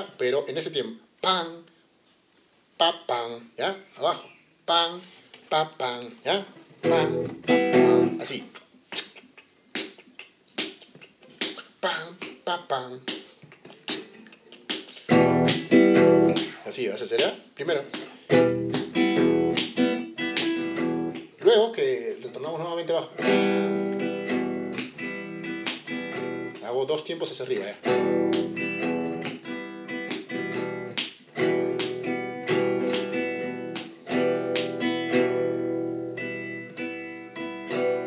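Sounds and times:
acoustic guitar strumming: 6.4 - 8.4, 15.1 - 16.7, 18.2 - 21.3, 23.1 - 26.7, 27.8 - 38.0.

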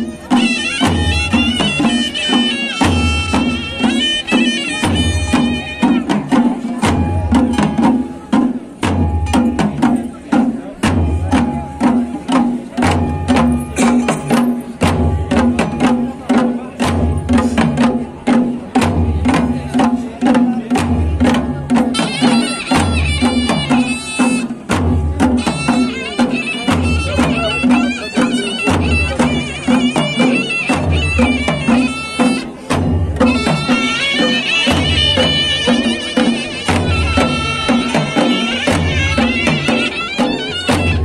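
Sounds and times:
shrill wind instrument melody: 0.0 - 6.2, 21.8 - 41.0
drum ensemble playing: 0.0 - 41.0.

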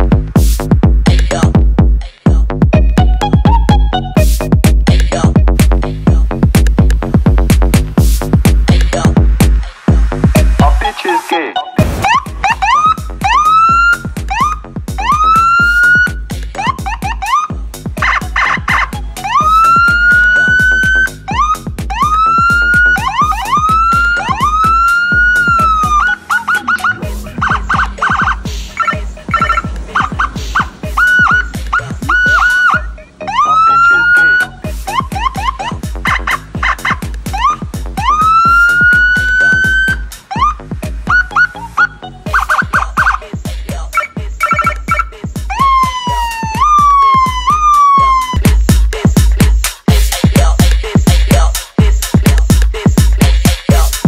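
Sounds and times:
background music with beat: 0.0 - 54.0
siren chirps: 10.6 - 43.2, 44.0 - 48.5
electronic siren whooping: 11.7 - 43.2, 44.0 - 48.5
rapidly pulsing siren tone: 11.7 - 48.8.

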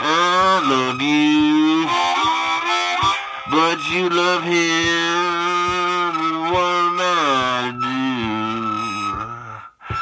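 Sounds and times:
harmonica bending blues note: 0.0 - 10.0.

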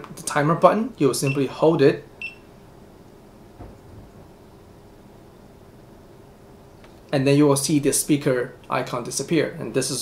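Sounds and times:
faint low thump: 3.5 - 4.5.

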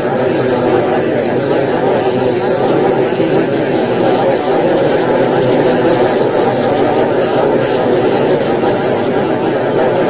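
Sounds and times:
muffled garbled drone: 0.0 - 10.0.

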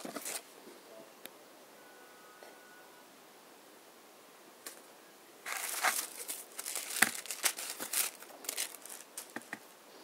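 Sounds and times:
wrapping crinkling: 5.4 - 9.6.

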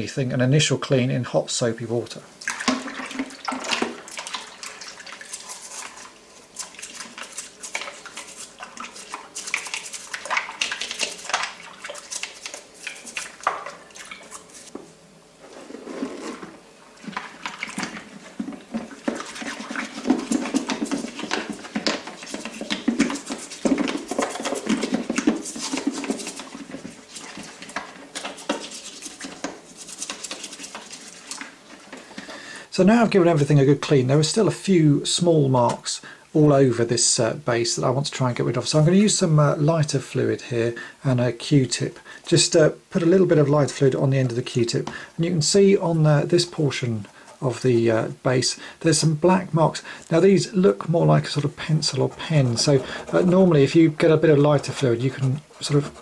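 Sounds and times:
water sloshing and splashing: 2.4 - 14.7, 15.5 - 32.2.

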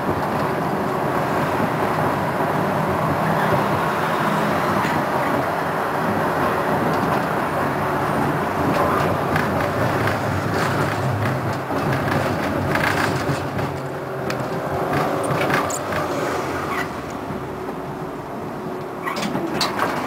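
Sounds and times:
tram hum and wheel noise: 0.0 - 20.0.

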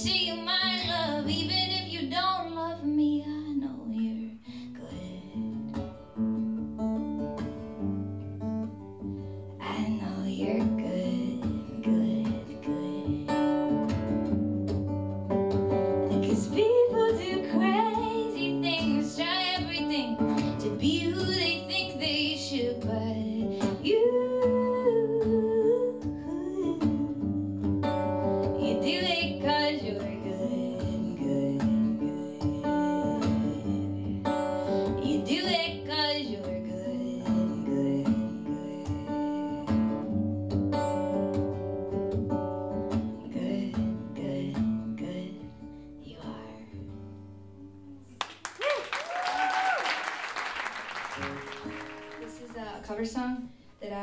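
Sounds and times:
woman singing into a microphone: 0.0 - 5.9, 9.6 - 13.8, 16.1 - 40.2, 42.8 - 48.2
strummed acoustic guitar: 3.9 - 48.1.

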